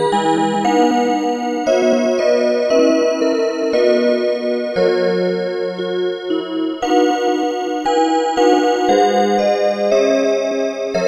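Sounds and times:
musical clock melody: 0.0s - 11.0s.

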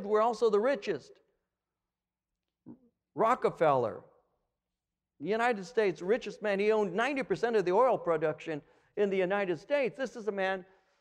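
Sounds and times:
man speaking: 0.0s - 1.1s, 2.7s - 4.1s, 5.2s - 10.7s.

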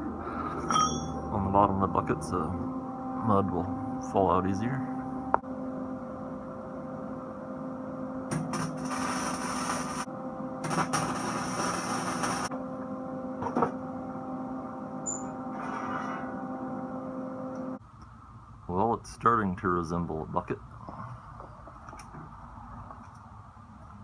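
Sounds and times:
welding machine hum: 7.9s - 16.3s
welding arc crackle: 8.3s - 12.5s.

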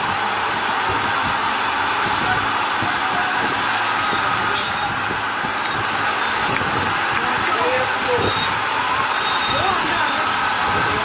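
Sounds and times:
truck engine and road noise: 0.0s - 11.0s
brief high hiss: 4.5s - 4.9s.

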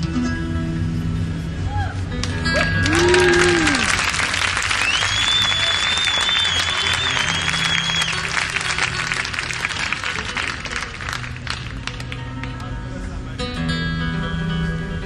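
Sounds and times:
audience applauding and cheering: 2.2s - 12.2s
high held whistle: 4.8s - 8.4s.

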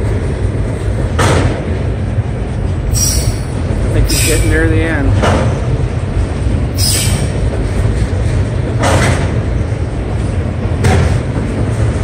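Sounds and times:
freight cars clanking: 0.0s - 12.0s
steel wheels rumbling on rail: 0.0s - 12.0s
wheel squeal: 2.9s - 4.6s, 6.8s - 7.3s.

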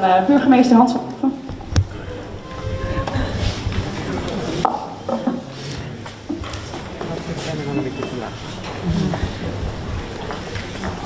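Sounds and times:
low murmur of voices: 0.0s - 11.0s.

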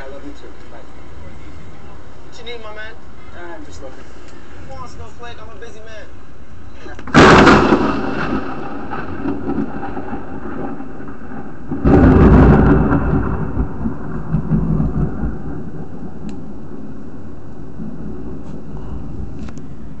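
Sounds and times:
rumbling thunder: 7.0s - 20.0s
thunderclap: 7.0s - 20.0s.

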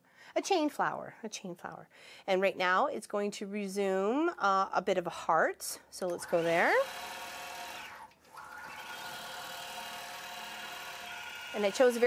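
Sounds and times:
quilting machine humming: 6.2s - 12.0s.

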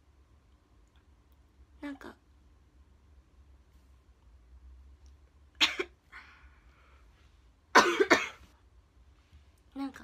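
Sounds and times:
woman coughing: 5.6s - 6.0s, 7.7s - 8.5s.

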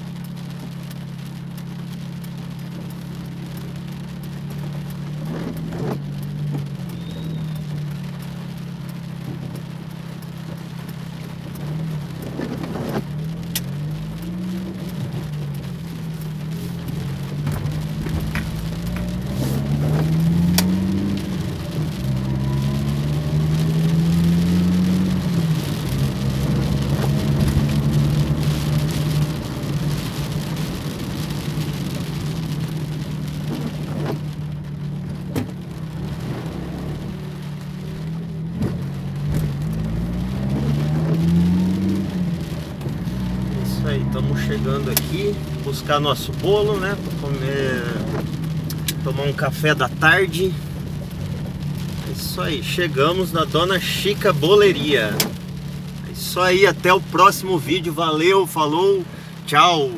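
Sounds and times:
car engine accelerating: 0.0s - 59.9s
heavy rain on car roof: 0.0s - 59.9s
sharp raindrop impacts: 0.0s - 59.9s.

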